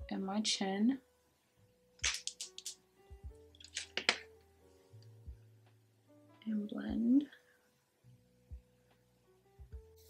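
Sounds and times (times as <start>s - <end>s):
small sharp makeup clicks: 2.0s - 2.8s.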